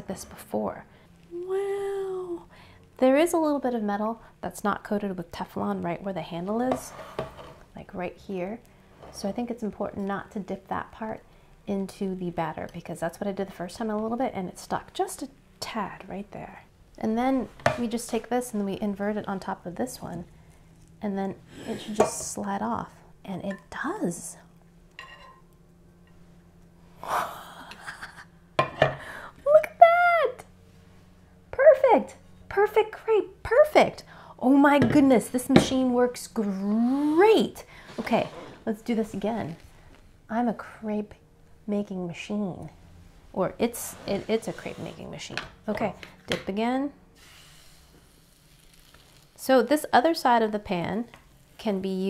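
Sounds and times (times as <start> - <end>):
woman gasping: 29.0 - 29.4
crepe batter hissing on hot pan: 47.2 - 49.4.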